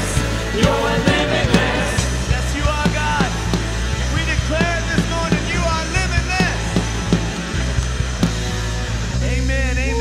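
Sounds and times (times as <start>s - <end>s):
church band music: 0.0s - 10.0s.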